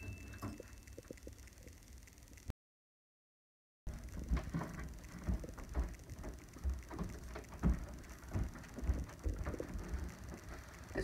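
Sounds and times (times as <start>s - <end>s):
footsteps: 3.9s - 11.0s.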